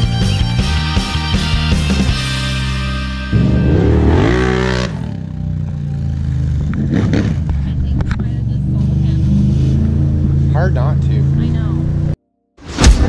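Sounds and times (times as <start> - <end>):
loud music: 0.0 - 5.2
vehicle engine idling: 3.3 - 12.2.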